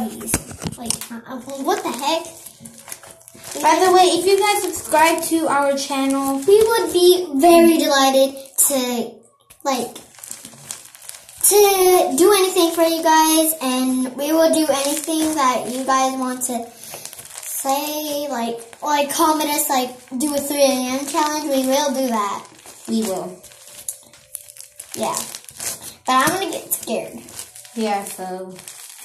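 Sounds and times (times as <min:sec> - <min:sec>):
faint crinkling rustle: 0:00.0 - 0:08.5, 0:09.4 - 0:13.6, 0:14.3 - 0:29.0
child's sing-song voice: 0:03.5 - 0:09.9.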